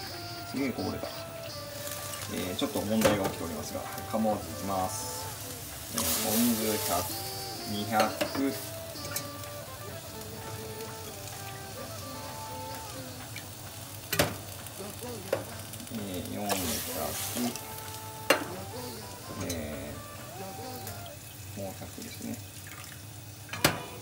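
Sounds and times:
water pouring into pot: 0.0s - 24.0s
water sizzling on hot stove: 0.0s - 24.0s.

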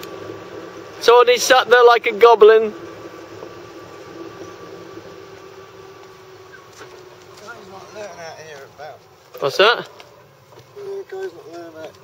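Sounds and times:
distant engine idling: 0.0s - 12.0s.

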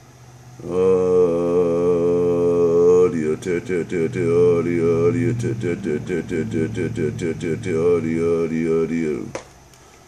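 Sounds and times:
man holding long ohh: 0.6s - 9.3s.

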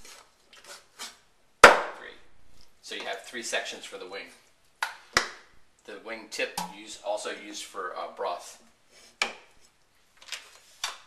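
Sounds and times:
cleaver chopping on wooden board: 1.6s - 2.0s.

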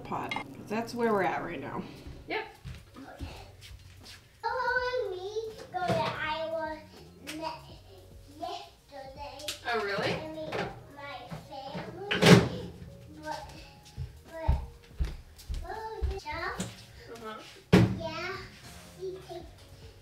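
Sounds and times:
woman talking: 0.0s - 2.6s
toddler talking: 4.4s - 14.7s, 15.5s - 17.1s, 18.0s - 19.6s.

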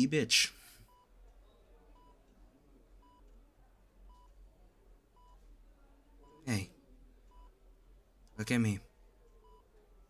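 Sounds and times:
heart monitor beeping: 0.7s - 2.4s, 3.0s - 3.4s, 4.0s - 4.5s, 5.1s - 5.6s, 6.2s - 7.6s, 9.2s - 10.0s.

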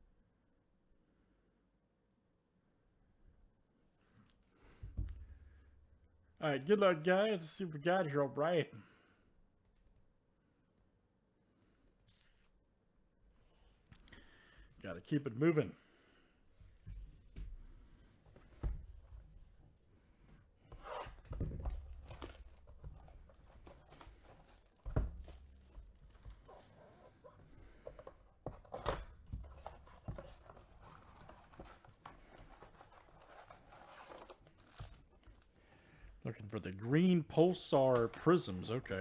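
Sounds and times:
plastic wrap tearing and crinkling: 20.8s - 26.8s, 30.4s - 35.6s
foil packs handled: 21.1s - 28.1s, 29.0s - 35.6s.

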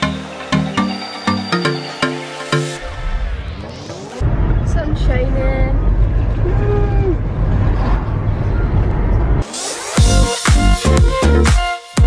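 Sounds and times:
music with a beat: 0.0s - 2.8s, 9.4s - 12.0s.

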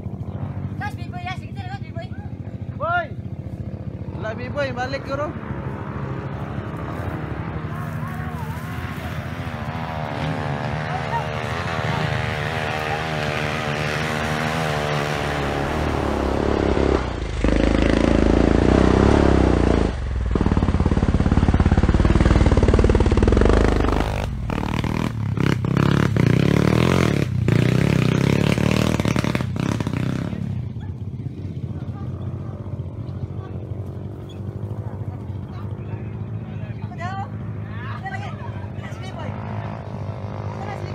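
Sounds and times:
dirt bike engine revving: 2.6s - 40.9s.

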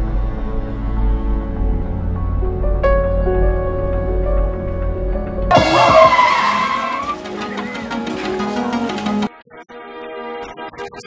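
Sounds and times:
background music: 0.0s - 11.0s
car tyres squealing: 5.5s - 8.3s.

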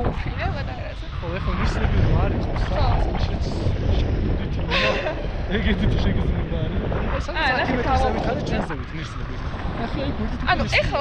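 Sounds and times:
voices: 0.0s - 11.0s
wind buffeting microphone: 0.0s - 11.0s.

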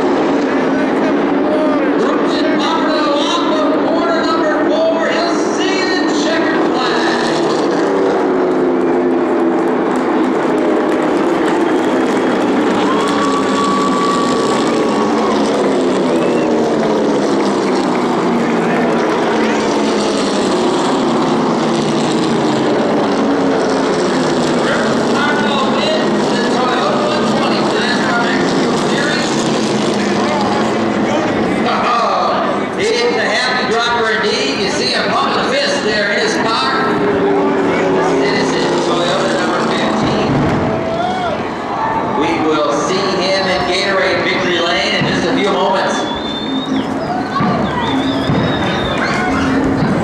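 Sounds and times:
race car engines passing: 0.0s - 50.0s.

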